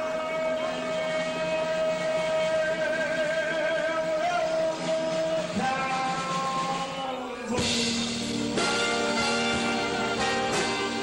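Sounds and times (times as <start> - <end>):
live band holding a long note: 0.0 - 11.0.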